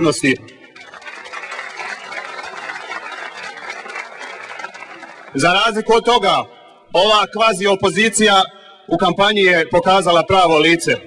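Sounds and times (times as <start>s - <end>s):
audience clapping: 0.6s - 5.8s.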